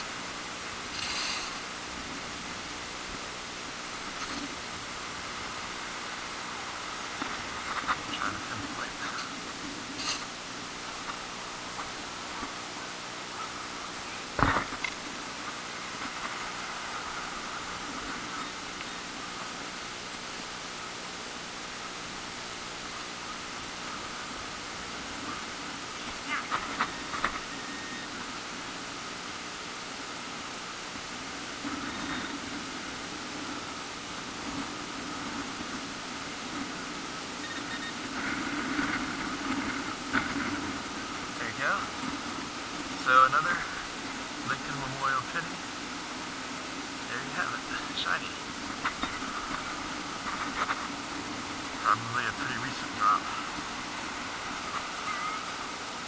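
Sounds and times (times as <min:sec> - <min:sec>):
steady background hiss: 0:00.0 - 0:56.0.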